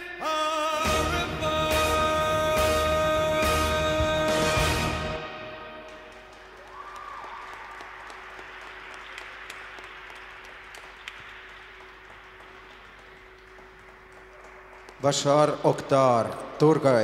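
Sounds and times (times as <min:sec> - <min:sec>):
audience applauding: 0:05.8 - 0:17.0.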